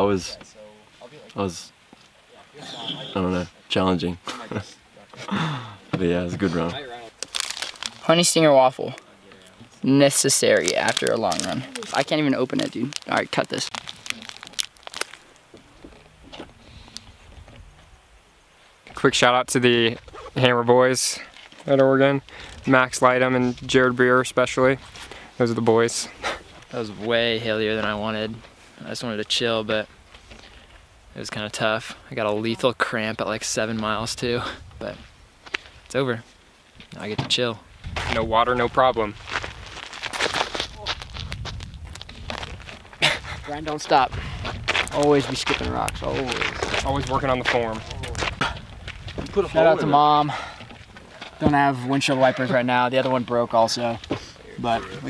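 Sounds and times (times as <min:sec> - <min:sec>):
footsteps crunching on gravel: 0:06.4 - 0:08.2, 0:10.4 - 0:16.6, 0:37.8 - 0:55.0
wrapper crinkling: 0:07.1 - 0:08.4, 0:10.2 - 0:15.6
steady low rumble: 0:37.7 - 0:51.7.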